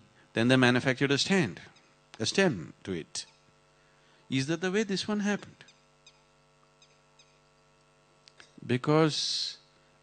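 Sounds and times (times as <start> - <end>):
steady low hum: 0.0 - 10.0
faint high chirps: 5.6 - 7.7.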